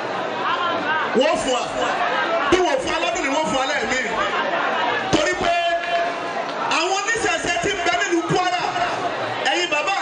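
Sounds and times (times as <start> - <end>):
voices chattering: 0.0 - 10.0
man speaking over pa system: 2.5 - 4.2, 5.1 - 10.0.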